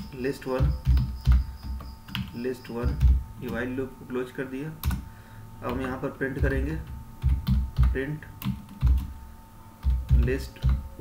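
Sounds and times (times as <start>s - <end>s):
computer keyboard key taps: 0.6s - 3.6s, 5.6s - 9.1s, 9.8s - 10.8s.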